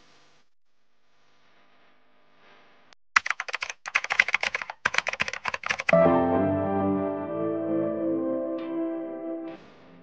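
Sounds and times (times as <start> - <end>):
keyboard typing clicks: 3.2 - 6.1
music with sustained tones: 6.0 - 9.6.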